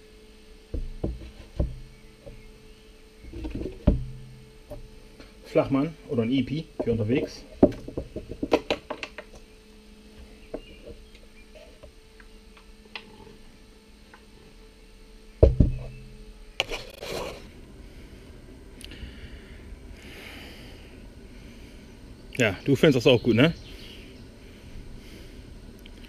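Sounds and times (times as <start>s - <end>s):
loud thump of bottle carrier: 15.4s - 15.9s.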